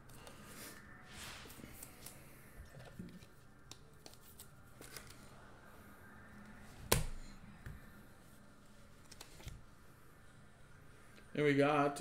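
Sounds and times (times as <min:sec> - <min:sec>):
cards rustling: 0:01.4 - 0:05.4, 0:08.8 - 0:09.6.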